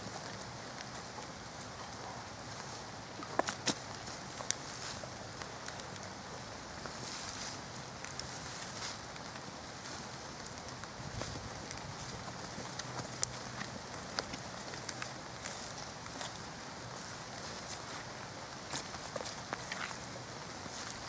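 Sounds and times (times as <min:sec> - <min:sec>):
twigs crackling and snapping: 0:00.0 - 0:21.0
hands scraping soil and debris: 0:06.8 - 0:21.0.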